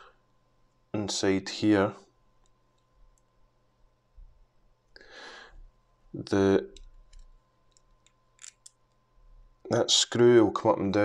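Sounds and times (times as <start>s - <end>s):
screwdriver turning small screw clicks: 6.8s - 9.0s.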